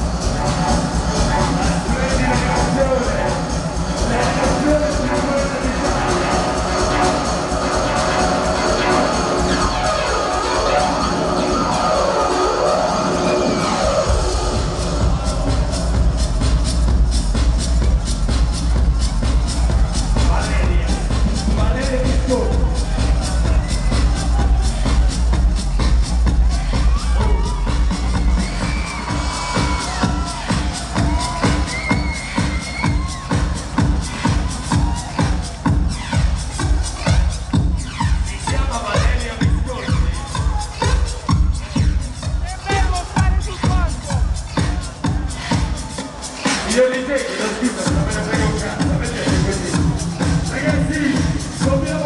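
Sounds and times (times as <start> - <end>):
crowd noise: 0.0 - 52.0
electronic dance music: 0.0 - 52.0
bass kick drum beat: 14.0 - 45.9, 47.8 - 52.0.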